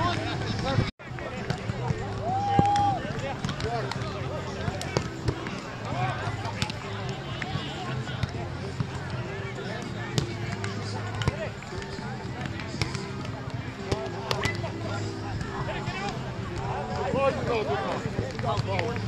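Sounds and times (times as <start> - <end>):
chatter of many voices: 0.0 - 19.0.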